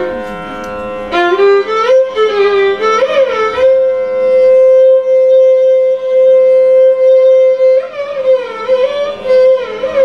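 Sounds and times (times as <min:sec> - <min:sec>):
violin accompaniment: 0:00.0 - 0:10.0.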